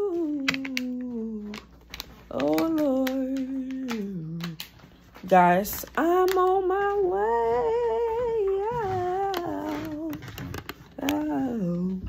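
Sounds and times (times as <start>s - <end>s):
woman humming: 0.0s - 1.7s, 2.3s - 4.6s.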